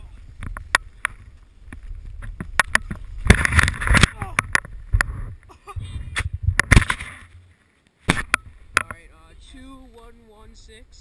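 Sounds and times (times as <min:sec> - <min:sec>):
snow crunching against camera: 0:00.0 - 0:10.8.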